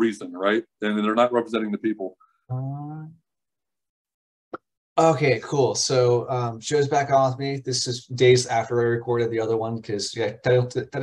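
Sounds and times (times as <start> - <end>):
man's voice: 0.0 - 3.2.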